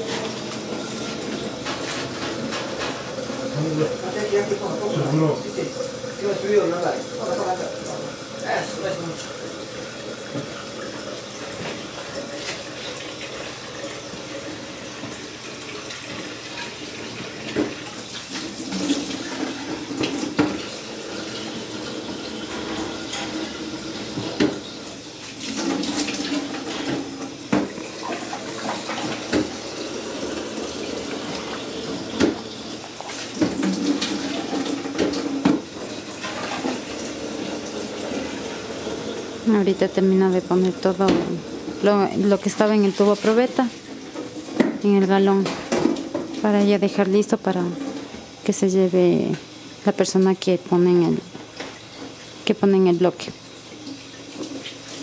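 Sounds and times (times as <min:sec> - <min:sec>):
water running from faucet: 0:00.0 - 0:55.0.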